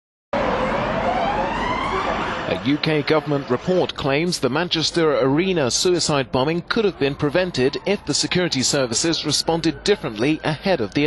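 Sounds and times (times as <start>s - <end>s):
emergency siren wailing: 0.4s - 3.6s, 5.8s - 11.0s
road noise: 0.4s - 11.0s.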